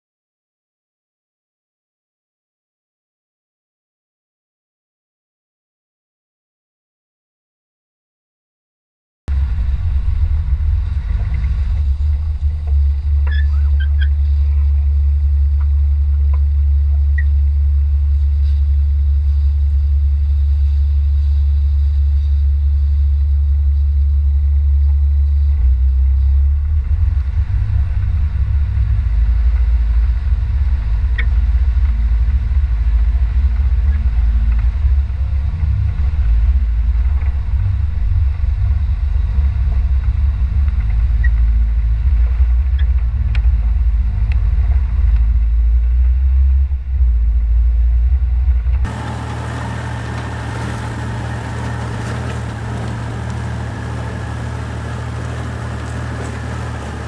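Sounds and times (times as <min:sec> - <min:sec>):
four-wheel drive engine rumble: 0:09.3 - 0:57.0.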